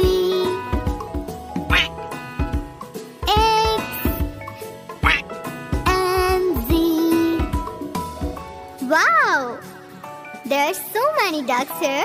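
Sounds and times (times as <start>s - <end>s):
children's song backing music: 0.0s - 12.0s
duck quack sound effect: 1.7s - 1.9s, 5.0s - 5.3s.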